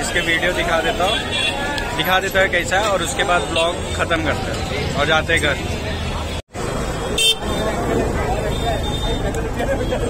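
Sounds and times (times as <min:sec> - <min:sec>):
crowd chatter: 0:00.0 - 0:10.0
traffic noise: 0:00.0 - 0:10.0
vehicle horn toot: 0:07.2 - 0:07.7.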